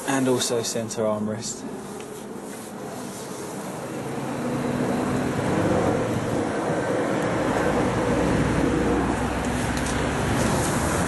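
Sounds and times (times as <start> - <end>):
road traffic noise: 0.0 - 11.0
vehicle engine and tyre rush: 1.5 - 11.0.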